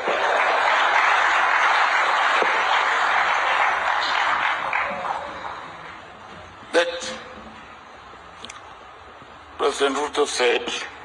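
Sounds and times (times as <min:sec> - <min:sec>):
large audience applauding: 0:00.0 - 0:06.1.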